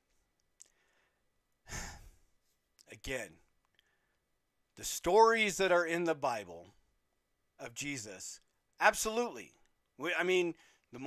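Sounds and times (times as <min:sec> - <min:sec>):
man sighing: 0:01.6 - 0:02.3.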